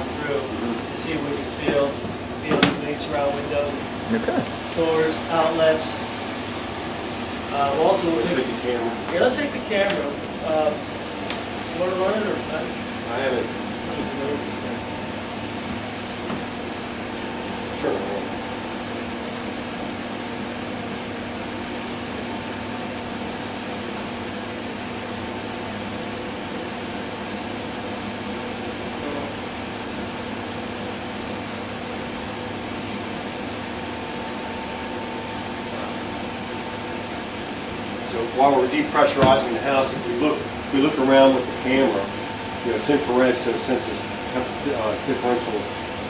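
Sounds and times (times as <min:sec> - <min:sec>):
fan humming: 0:00.0 - 0:46.0.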